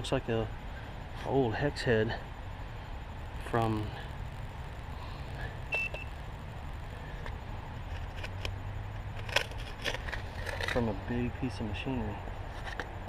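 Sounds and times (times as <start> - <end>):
short high beep: 5.7 - 6.1
light clicks and crackles: 7.2 - 10.9.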